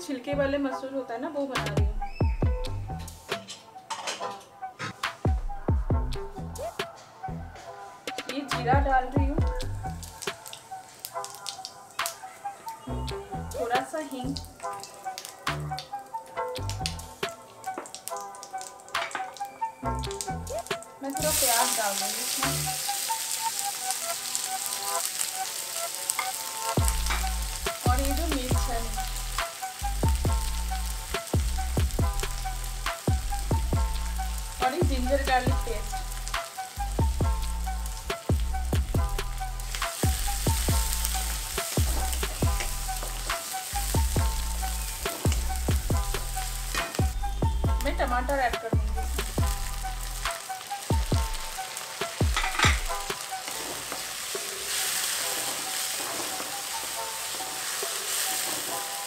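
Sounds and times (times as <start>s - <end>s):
onion sizzling in oil: 9.4s - 59.0s
spatula scraping and knocking pan: 52.2s - 54.1s.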